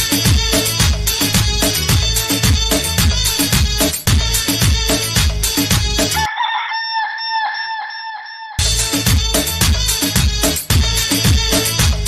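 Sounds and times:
dance music: 0.0s - 6.3s, 8.6s - 12.0s
chicken clucking: 6.2s - 8.6s.

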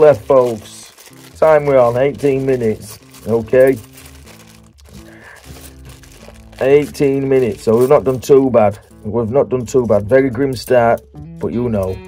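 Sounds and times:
plastic bag crinkling: 0.0s - 10.2s
soft background music: 0.0s - 12.0s.

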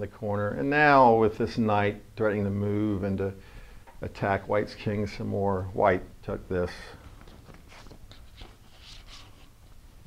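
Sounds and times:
rustling: 7.0s - 10.0s.

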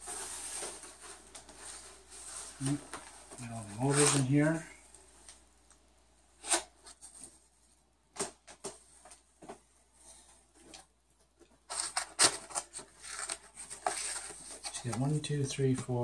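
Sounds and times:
rustling cardboard and foam: 0.0s - 4.8s, 11.4s - 16.0s.

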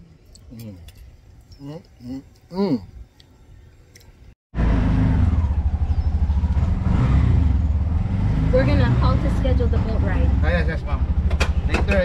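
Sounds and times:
small vehicle engine rumbling: 3.6s - 12.0s.

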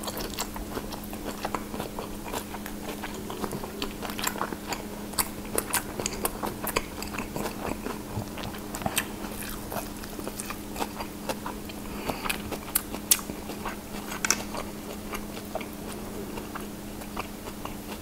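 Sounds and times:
lettuce crunching while chewing: 0.0s - 18.0s
steady low hum: 0.0s - 18.0s.

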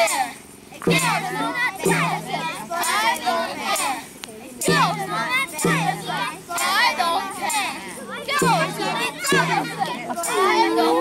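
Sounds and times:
children chanting an action song: 0.0s - 11.0s.

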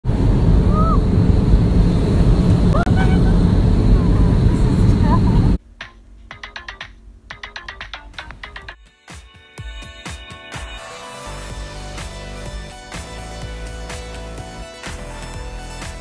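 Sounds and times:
airliner cabin roar: 0.0s - 5.6s
light plucked music: 5.8s - 16.0s.

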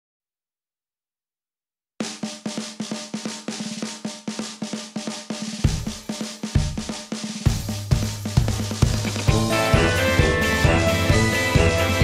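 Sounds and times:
fast snare drum pattern: 2.0s - 12.0s.

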